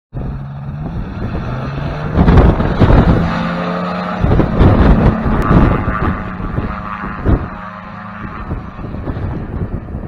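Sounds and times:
propeller engine droning: 0.1s - 10.0s
wind rumbling on microphone: 0.2s - 10.0s.

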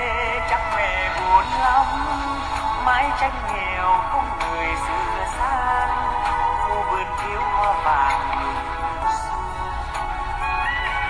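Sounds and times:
man singing a slow ballad: 0.0s - 10.0s
backing track music: 0.0s - 11.0s.

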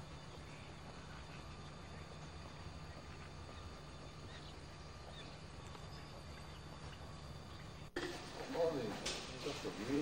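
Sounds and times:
steady low hum: 0.0s - 10.0s
footsteps on paving: 2.1s - 10.0s.

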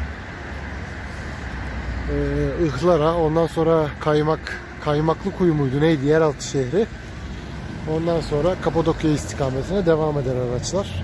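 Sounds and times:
low traffic hum: 0.0s - 11.0s
traffic hiss: 0.0s - 11.0s.

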